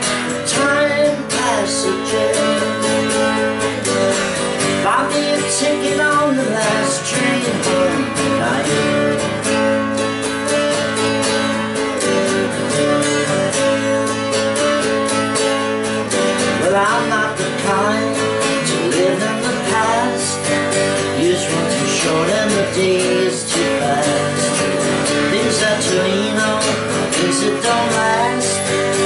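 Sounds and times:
acoustic guitar strumming chords: 0.0s - 29.0s.

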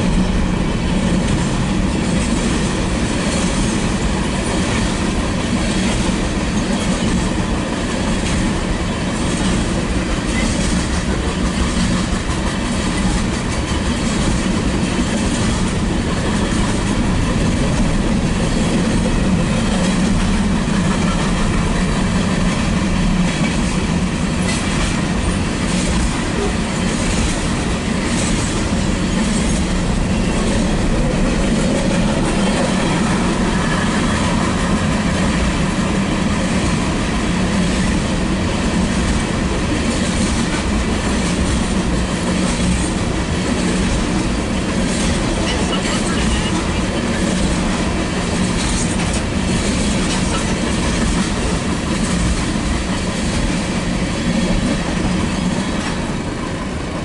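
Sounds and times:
freight train rumbling past: 0.0s - 57.0s.

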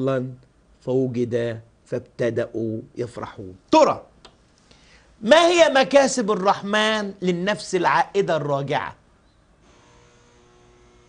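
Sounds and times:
faint electrical hum: 0.0s - 11.0s
faint steady tones: 9.0s - 11.0s.

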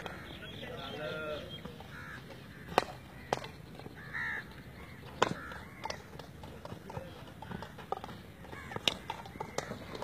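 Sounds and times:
hockey stick striking ball: 5.1s - 6.3s.

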